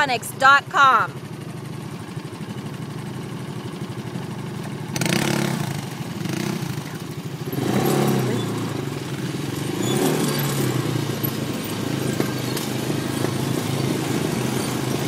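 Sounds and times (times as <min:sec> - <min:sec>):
atv engine revving: 0:00.0 - 0:15.0.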